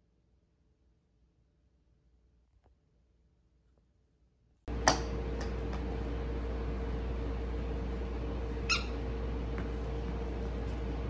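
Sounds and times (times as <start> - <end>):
low background hum: 0.1 - 11.0
small dog yipping: 8.7 - 9.0.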